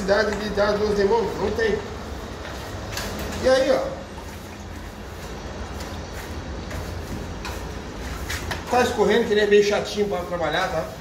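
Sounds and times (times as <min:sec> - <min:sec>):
primer scrubbed on plaster: 0:04.8 - 0:11.0.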